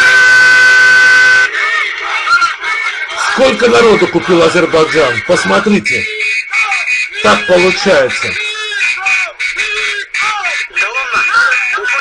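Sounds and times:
loud steady horn blast: 0:00.0 - 0:01.5
crowd shouting: 0:06.2 - 0:12.0.

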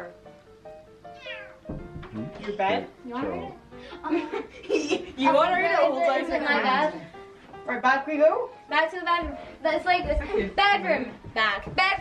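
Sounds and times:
soft background music: 0:00.0 - 0:12.0
cat meowing: 0:01.1 - 0:01.7.

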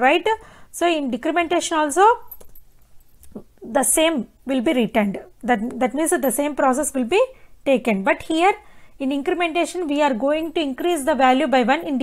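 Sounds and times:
woman speaking: 0:00.0 - 0:02.4, 0:03.3 - 0:12.0.

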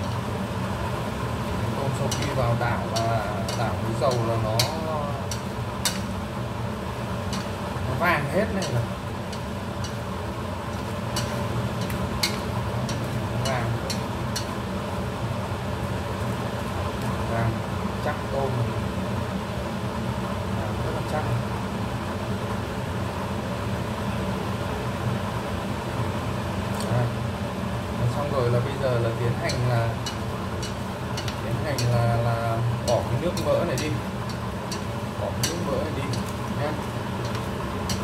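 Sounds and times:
shrimp sizzling in oil: 0:00.0 - 0:38.0
steady hum: 0:00.0 - 0:38.0.

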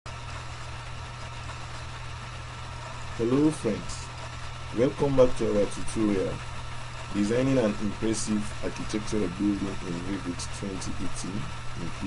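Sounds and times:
steady low hum: 0:00.1 - 0:12.0
even hiss: 0:01.2 - 0:12.0.

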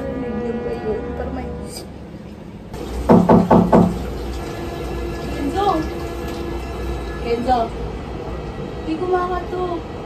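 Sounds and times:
quick knocks: 0:03.0 - 0:04.0.

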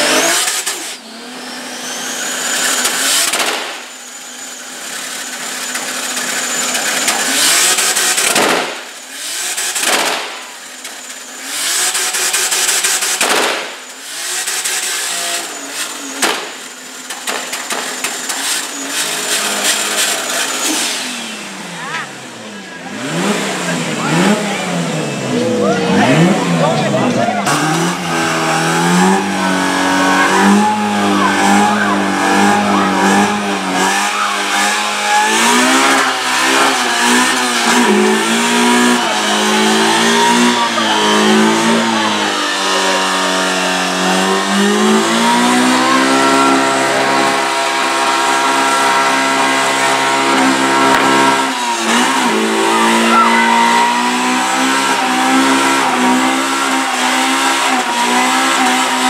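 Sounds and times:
car engine revving hard: 0:00.0 - 0:59.0.

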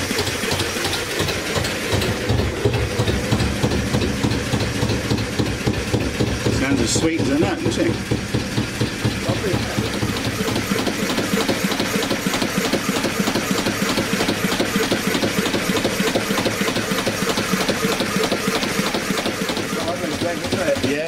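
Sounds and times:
diesel engine running: 0:00.0 - 0:21.0.

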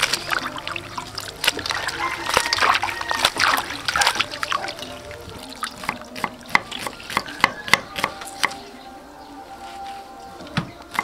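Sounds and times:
water splashing in a bowl: 0:00.0 - 0:07.7
water dripping: 0:00.0 - 0:07.8.

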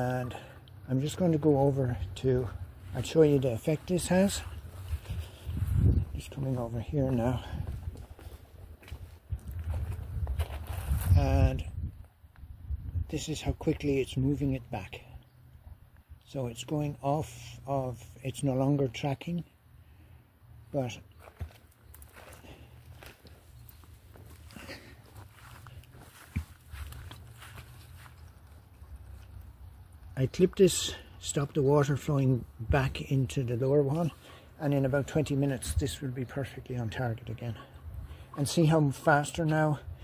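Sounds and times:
low rumble on microphone: 0:01.9 - 0:15.9
footsteps on gravel: 0:02.8 - 0:11.2, 0:21.2 - 0:29.2.

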